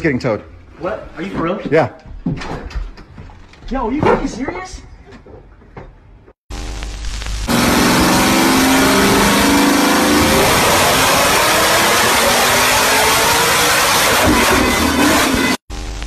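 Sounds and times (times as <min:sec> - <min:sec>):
car engine revving at full throttle: 0:07.4 - 0:15.6.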